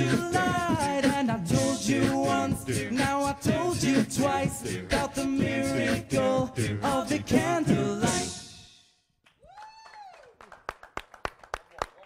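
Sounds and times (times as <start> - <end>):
hand clapping: 10.4 - 12.0.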